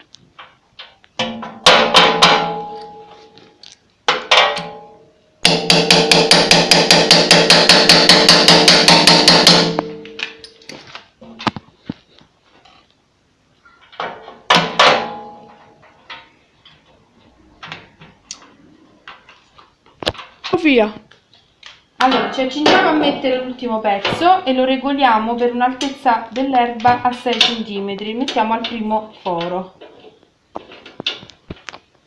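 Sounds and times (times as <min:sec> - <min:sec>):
knocks and clicks of handled parts: 0:00.0 - 0:12.8, 0:13.6 - 0:22.8, 0:25.8 - 0:32.0.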